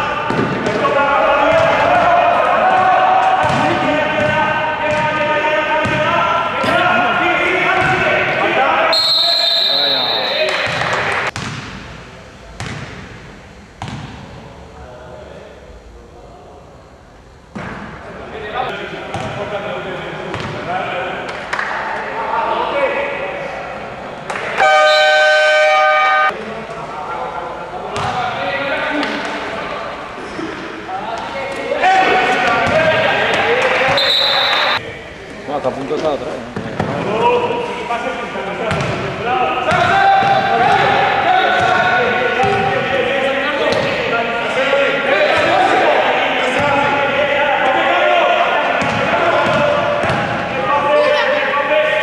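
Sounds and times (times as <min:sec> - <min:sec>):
players shouting: 0:00.0 - 0:11.3, 0:24.3 - 0:26.4, 0:31.2 - 0:34.8, 0:39.2 - 0:52.0
basketball bouncing on court: 0:02.8 - 0:05.2, 0:05.8 - 0:06.1, 0:10.6 - 0:11.9, 0:12.6 - 0:13.1, 0:19.1 - 0:19.4, 0:28.0 - 0:28.2, 0:38.7 - 0:39.0, 0:48.8 - 0:50.4
loud buzzer: 0:24.6 - 0:26.4.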